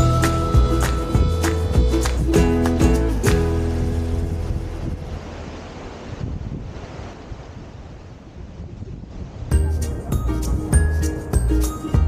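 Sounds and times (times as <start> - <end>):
sea surf over rocks: 0.0 - 10.6
wind on microphone: 0.0 - 12.0.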